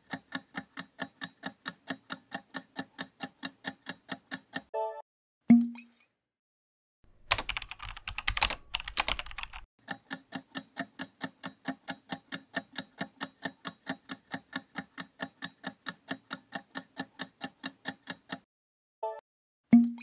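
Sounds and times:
keyboard typing clatter: 7.3s - 9.7s.

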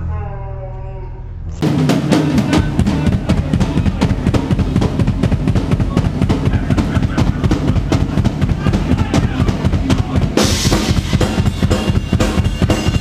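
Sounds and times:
drum kit pounding: 1.6s - 13.0s
live rock band playing: 1.6s - 13.0s.

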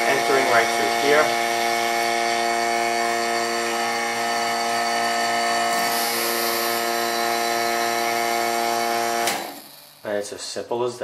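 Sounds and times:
vacuum pump humming: 0.0s - 10.1s.

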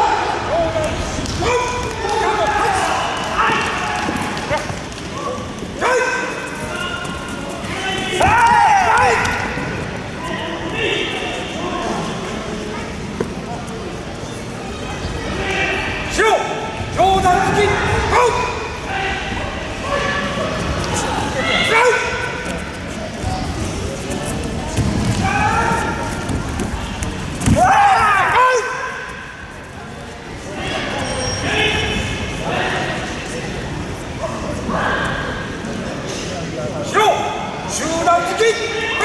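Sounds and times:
background chatter: 0.0s - 39.0s
loud shout: 5.2s - 7.0s, 7.7s - 9.6s, 27.5s - 29.2s
thuds: 24.7s - 27.7s.

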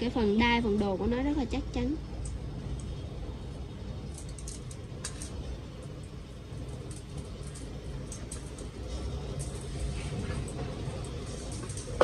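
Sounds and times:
metal colanders clinking: 4.1s - 5.4s, 6.8s - 12.0s.

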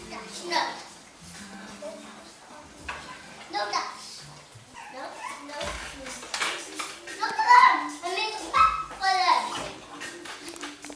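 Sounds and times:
children calling and squealing: 2.9s - 10.2s.

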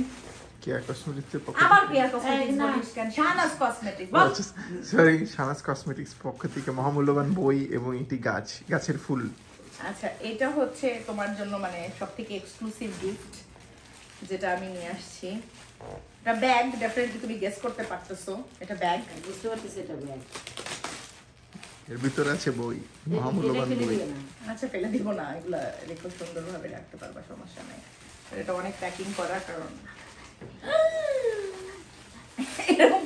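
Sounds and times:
plastic wrapping crinkling: 0.0s - 33.0s
woman speaking: 1.6s - 4.7s, 9.8s - 13.5s, 14.2s - 15.6s, 16.3s - 20.3s, 23.1s - 30.0s
quiet talk: 21.9s - 26.2s.

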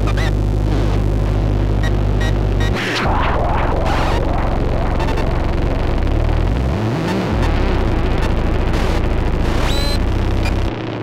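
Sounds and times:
high whine rising: 2.5s - 8.5s
experimental electronic music: 2.6s - 9.1s
low tone swooping: 2.7s - 6.8s.

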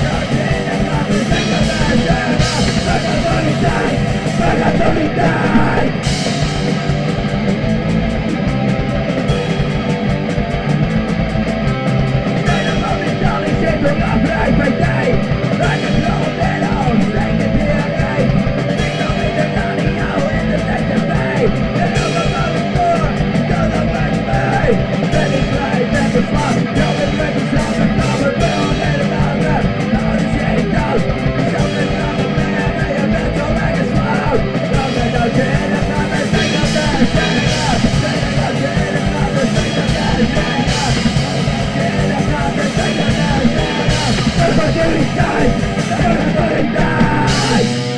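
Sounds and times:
distorted electric guitar: 0.0s - 47.9s
fast drum beat: 0.0s - 47.9s.

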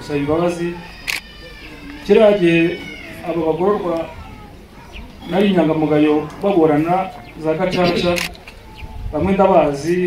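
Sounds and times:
man speaking into a microphone: 0.0s - 1.0s, 2.0s - 4.2s, 5.2s - 8.4s, 9.1s - 10.0s.

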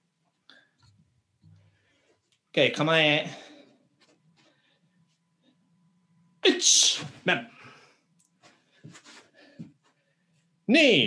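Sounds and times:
clothing rustling: 8.3s - 10.5s
feet sliding on floor: 8.4s - 10.0s.

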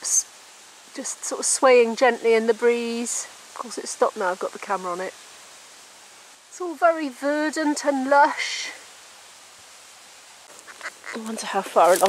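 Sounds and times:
faint hiss: 0.0s - 12.0s
small rustles and clicks: 10.4s - 12.0s.

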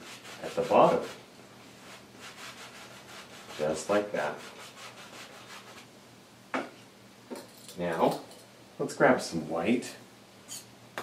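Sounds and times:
brush rubbing on canvas: 0.0s - 5.9s.

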